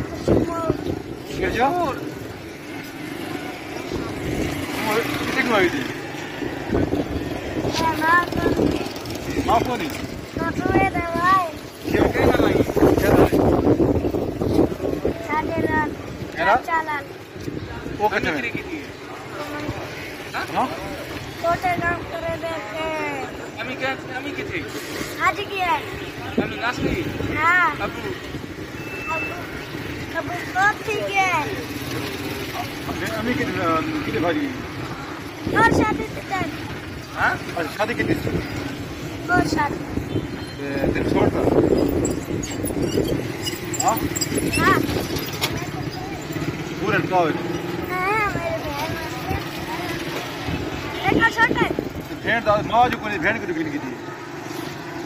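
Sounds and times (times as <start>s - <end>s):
street traffic: 0.0s - 55.0s
faint voices: 18.7s - 52.8s
short high-pitched beep: 28.8s - 29.5s.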